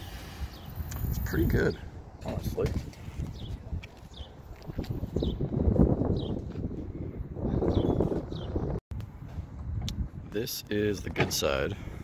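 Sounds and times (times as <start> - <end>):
footsteps on gravel: 2.6 - 5.0
bird chirping: 7.6 - 8.7.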